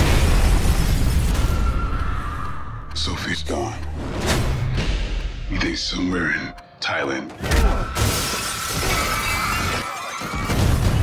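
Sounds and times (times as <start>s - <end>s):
glass shattering: 8.0s - 11.0s.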